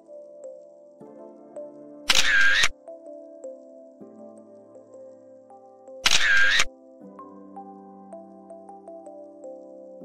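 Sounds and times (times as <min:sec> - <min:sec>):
soft background music: 0:00.0 - 0:10.0
camera shutter sound effect: 0:02.1 - 0:02.7, 0:06.0 - 0:06.7.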